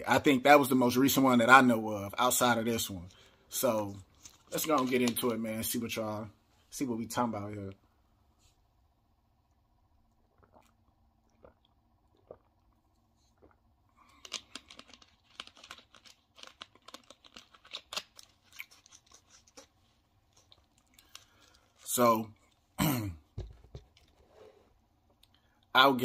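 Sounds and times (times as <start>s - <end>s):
person swallowing soda: 10.1s - 14.4s.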